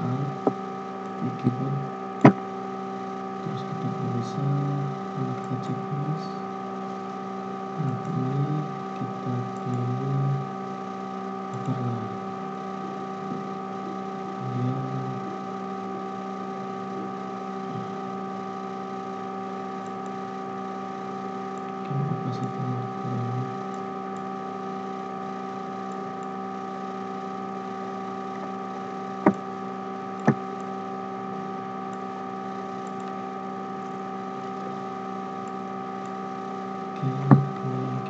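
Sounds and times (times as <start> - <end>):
low indistinct speech: 0.0 - 0.5, 1.2 - 1.9, 3.4 - 6.4, 7.8 - 10.5, 11.6 - 12.2, 12.8 - 15.6, 21.9 - 23.6, 37.0 - 38.0
steady hum of held tones: 0.0 - 38.0.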